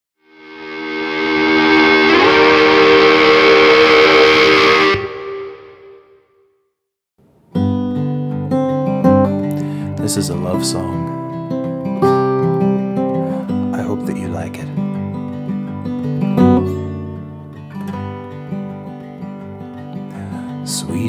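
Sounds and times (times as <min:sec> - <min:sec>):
distorted guitar music: 0:00.2 - 0:06.0, 0:07.5 - 0:20.6
acoustic guitar strumming: 0:00.3 - 0:06.0, 0:07.5 - 0:21.0.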